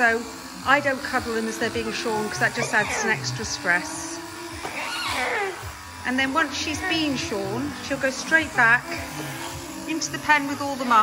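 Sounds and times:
electric shears buzzing: 0:00.0 - 0:11.0
alpaca whining cry: 0:02.1 - 0:03.6, 0:04.6 - 0:05.8.

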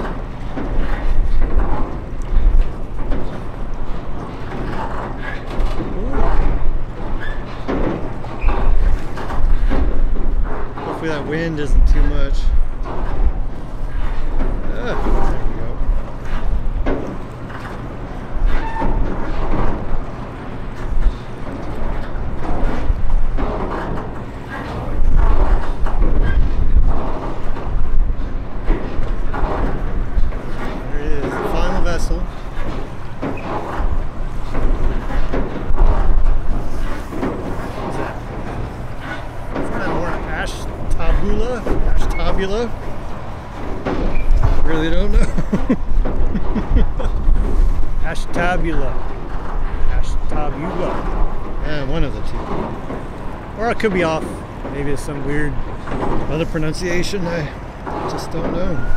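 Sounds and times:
wind gusts on microphone: 0:24.8 - 0:33.0.

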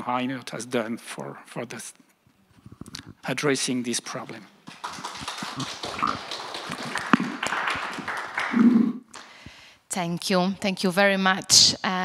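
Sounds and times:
audience applauding: 0:04.6 - 0:09.0.

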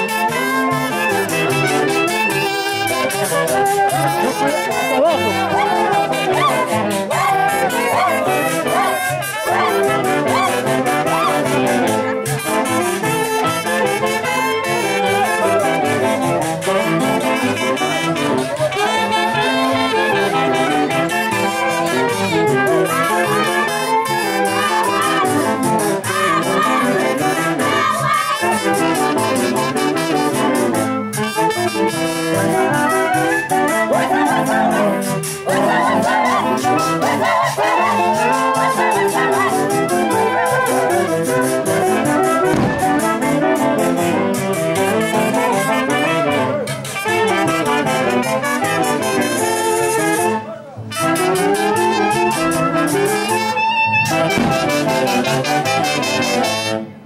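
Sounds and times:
brass band dance music: 0:00.0 - 0:57.0.

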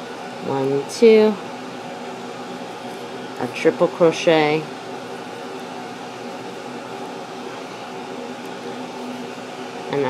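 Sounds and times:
air conditioning running: 0:00.0 - 0:10.0
room fan whirring: 0:00.0 - 0:10.0.

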